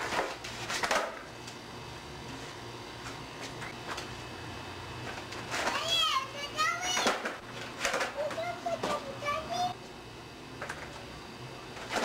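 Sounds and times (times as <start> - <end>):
children calling and chattering: 5.7 - 7.2, 8.2 - 9.8.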